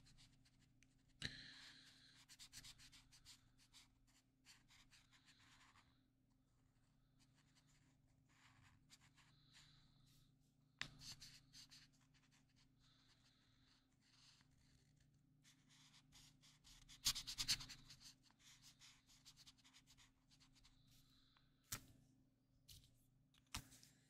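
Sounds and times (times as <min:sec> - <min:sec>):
marker rubbing on paper: 0:01.6 - 0:05.8, 0:07.4 - 0:09.3, 0:10.9 - 0:12.6, 0:14.0 - 0:20.7.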